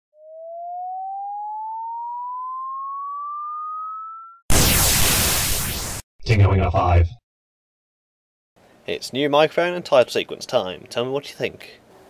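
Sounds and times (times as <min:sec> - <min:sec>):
electronic tone gliding upward: 0:00.2 - 0:06.0.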